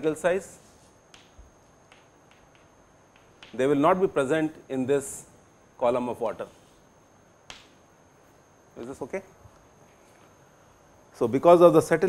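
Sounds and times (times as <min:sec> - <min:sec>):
chalk tapping and scratching: 0:00.6 - 0:03.6.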